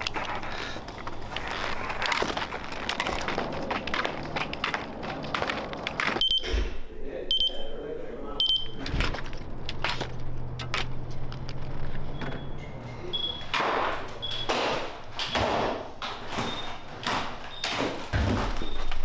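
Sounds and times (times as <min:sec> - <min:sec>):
skis clacking on pavement: 0:00.0 - 0:06.2
door opening: 0:08.6 - 0:19.0.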